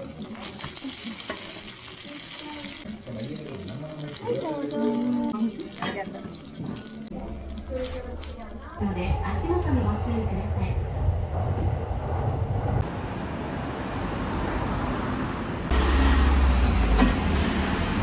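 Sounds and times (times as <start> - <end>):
food sizzling on a griddle: 0.0 - 7.1.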